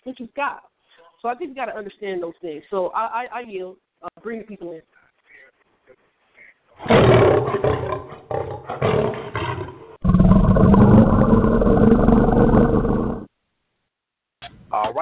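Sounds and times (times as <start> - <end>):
lion roar: 6.8 - 13.3.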